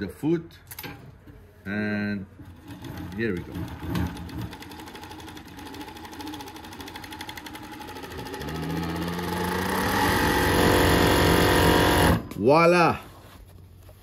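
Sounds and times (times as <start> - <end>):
sewing machine needles ticking: 3.8 - 12.1.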